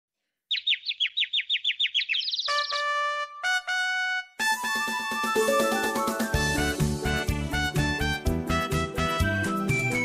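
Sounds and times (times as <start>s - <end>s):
bird chirping: 0.3s - 3.2s.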